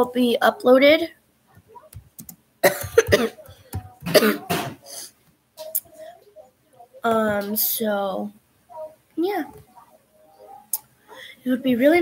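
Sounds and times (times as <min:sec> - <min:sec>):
girl clearing her throat: 0:02.6 - 0:05.0
girl coughing: 0:02.6 - 0:05.0.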